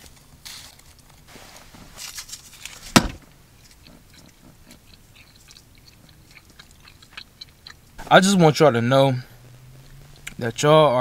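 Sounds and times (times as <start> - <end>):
person chewing candy: 3.5 - 8.0, 9.2 - 10.4.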